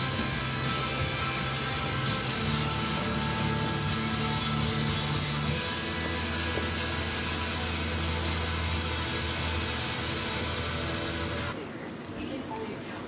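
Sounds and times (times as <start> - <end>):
music with low bass: 0.0 - 11.5.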